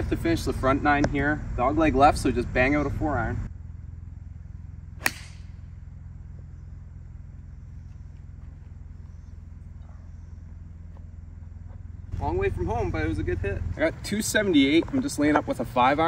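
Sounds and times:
low rumble: 0.0s - 16.0s
golf club striking ball: 5.0s - 5.7s.

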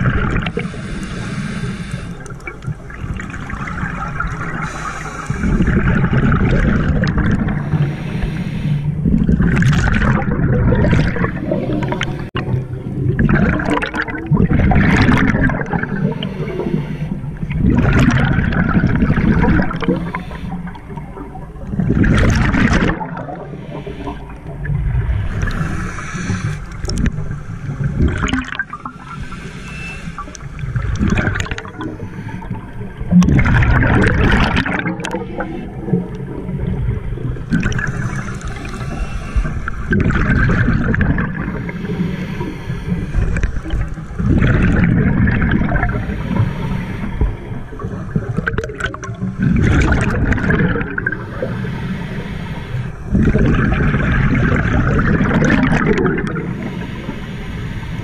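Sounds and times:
bubbling exhalations: 0.0s - 0.8s, 2.3s - 8.4s, 9.0s - 16.8s, 17.4s - 29.2s, 30.2s - 36.8s, 37.4s - 52.3s, 53.1s - 57.2s
scuba regulator breathing underwater: 0.1s - 2.6s, 3.2s - 12.5s, 13.5s - 36.7s, 37.6s - 58.0s.

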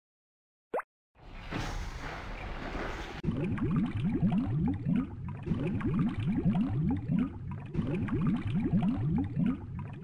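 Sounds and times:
cartoon bubbling water pops: 3.2s - 10.0s.

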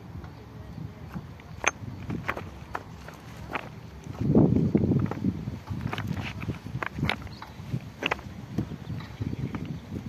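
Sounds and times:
sharp footsteps: 1.1s - 9.8s.

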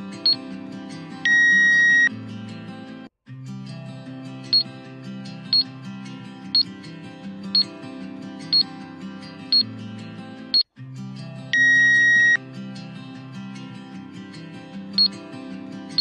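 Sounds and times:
background music: 0.0s - 16.0s
electronic beep: 1.3s - 2.1s, 11.6s - 12.4s.

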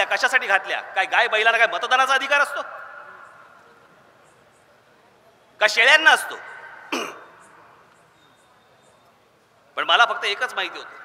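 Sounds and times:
man speaking over public address: 0.0s - 7.1s, 9.7s - 11.0s
echo ring: 5.7s - 8.7s
throat clearing into microphone: 6.9s - 7.3s.

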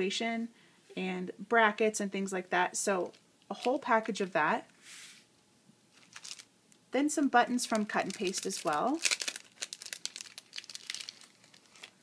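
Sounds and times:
plastic packet crinkling: 6.0s - 6.5s, 7.5s - 12.0s.

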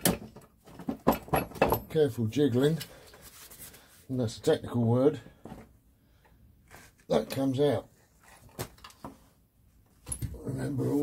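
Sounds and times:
knocks and shuffling of metal box: 0.0s - 2.0s.

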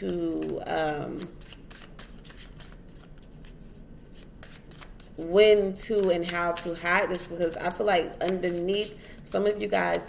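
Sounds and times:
person speaking: 0.0s - 1.4s, 5.2s - 10.0s
cards being shuffled: 0.0s - 5.2s, 5.9s - 7.5s.

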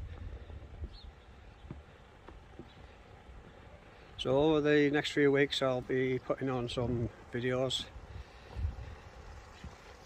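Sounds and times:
wind rumble on microphone: 0.0s - 1.9s, 6.6s - 10.0s.

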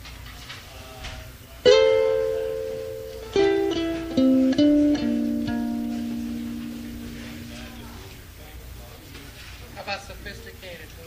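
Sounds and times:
electric ukulele strummed chord: 1.6s - 8.1s
ukulele plucked notes: 1.6s - 8.1s.

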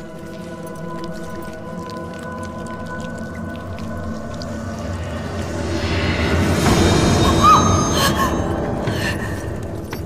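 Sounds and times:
low dark rumble: 0.0s - 10.0s.

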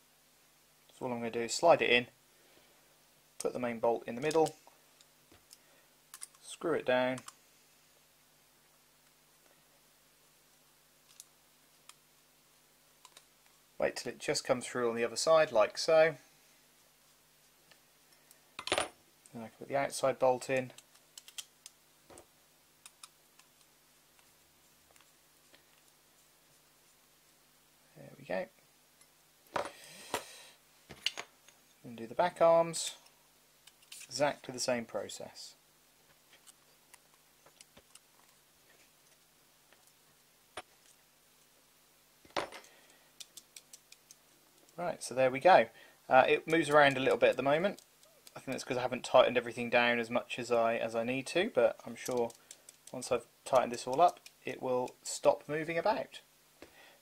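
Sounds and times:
faint handling ticks: 42.7s - 44.8s, 46.2s - 49.3s, 51.2s - 55.6s.

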